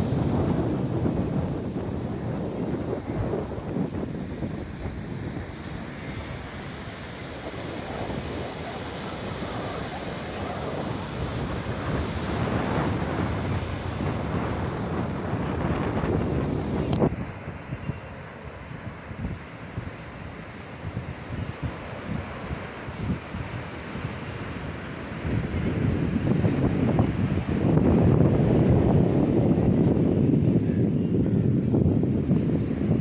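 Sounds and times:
surf breaking on beach: 0.0s - 33.0s
wind buffeting microphone: 0.0s - 33.0s.

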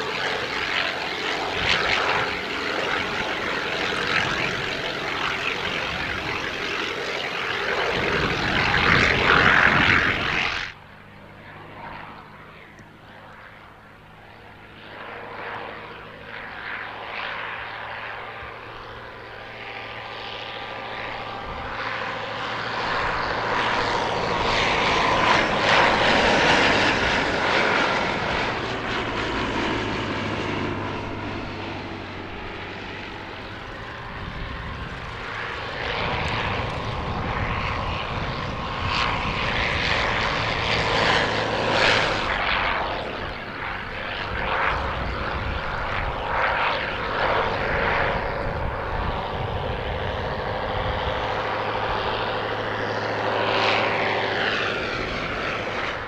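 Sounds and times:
biplane propeller engine droning: 0.0s - 56.0s.

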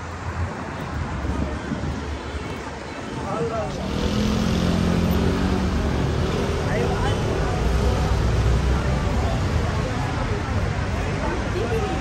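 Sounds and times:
road rumble: 0.0s - 12.0s
vehicle engine humming: 2.4s - 12.0s.

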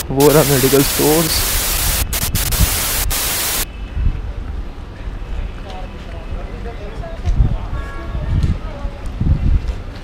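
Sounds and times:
tv static hiss: 0.0s - 3.7s
low wind rumble on microphone: 1.4s - 10.0s.

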